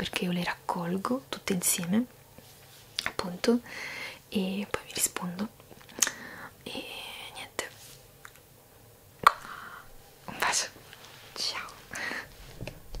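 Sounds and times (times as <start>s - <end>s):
woman whispering: 4.3s - 5.5s, 6.6s - 7.8s, 9.4s - 12.1s.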